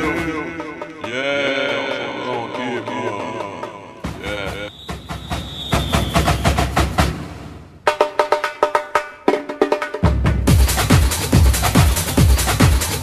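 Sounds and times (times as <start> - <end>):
held high tone: 0.0 - 6.4
percussion-driven music: 0.0 - 13.0.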